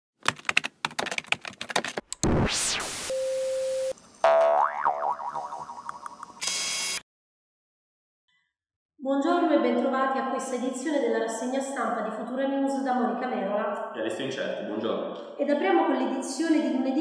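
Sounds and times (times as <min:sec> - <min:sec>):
short steady tone: 0:03.1 - 0:04.0
cartoon boing: 0:04.2 - 0:06.2.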